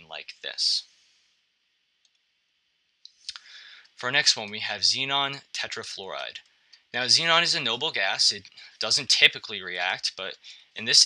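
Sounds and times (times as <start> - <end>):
person speaking: 0.0 - 0.8, 3.2 - 6.4, 7.0 - 11.0
soft hiss: 0.0 - 11.0.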